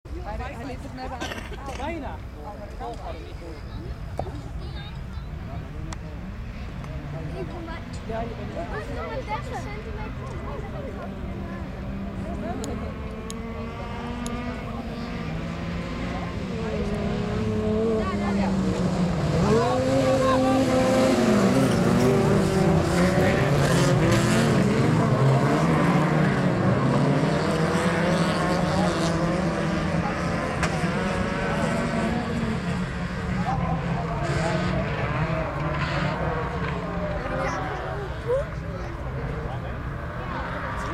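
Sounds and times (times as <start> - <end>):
racing car engines revving: 0.1 - 40.9.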